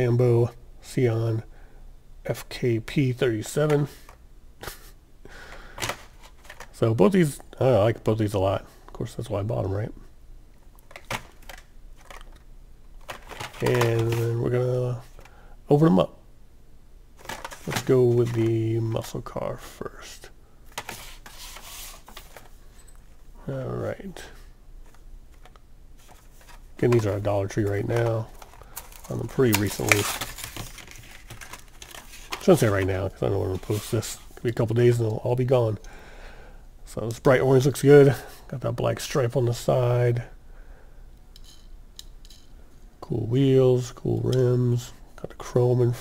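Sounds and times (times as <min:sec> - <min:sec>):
blister pack rubbing scrape: 0:20.9 - 0:22.3.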